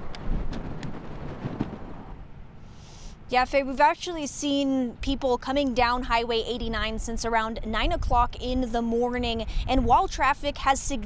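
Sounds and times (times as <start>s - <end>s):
wind buffeting microphone: 0.0s - 2.5s, 5.0s - 11.0s.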